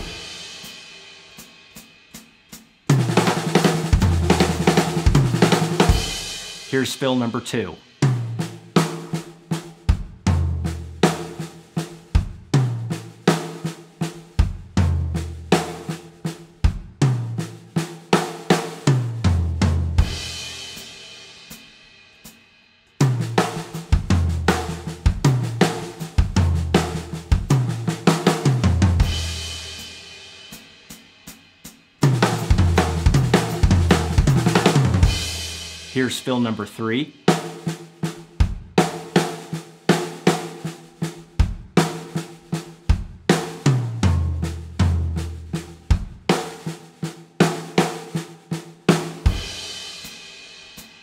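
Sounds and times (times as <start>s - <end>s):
drum kit fill: 0.0s - 51.0s.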